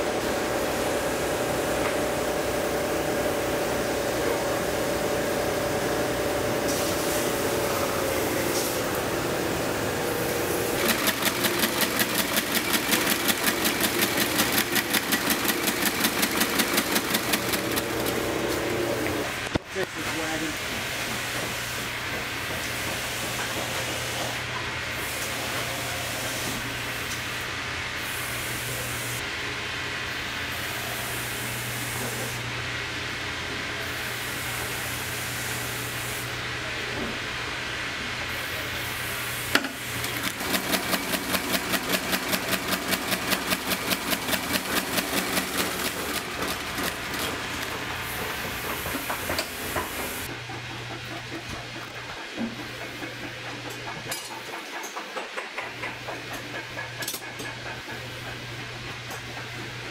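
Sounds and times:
stitching machine hiss and hum: 0.0 - 29.4, 30.0 - 59.9
stitching machine rapid strokes: 10.7 - 18.7, 40.0 - 48.6.

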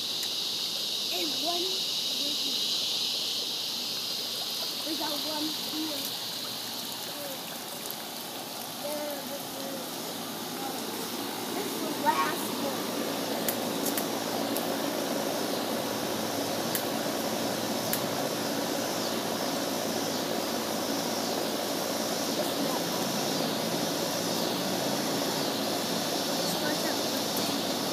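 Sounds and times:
air conditioner unit running: 0.0 - 27.9
faint high clicks: 13.4 - 14.7.

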